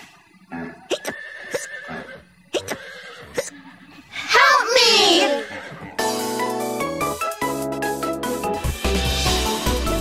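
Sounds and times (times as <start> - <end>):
cartoon horse hiccupping: 0.5 - 3.6
light background music: 6.0 - 10.0.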